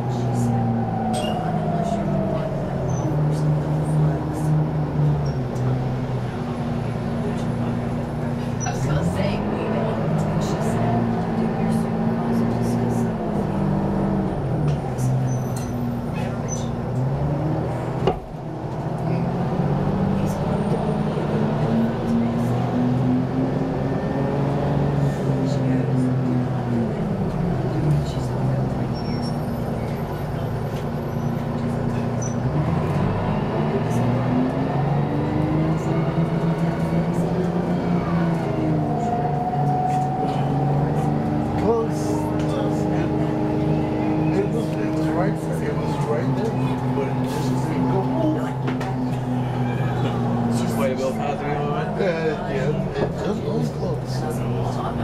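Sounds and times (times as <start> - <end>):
bus diesel engine accelerating: 0.0 - 55.0.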